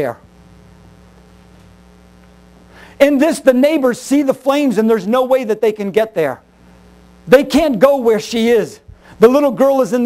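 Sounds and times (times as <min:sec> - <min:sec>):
electrical mains hum: 0:00.0 - 0:10.0
man speaking: 0:03.0 - 0:06.4, 0:07.3 - 0:10.0.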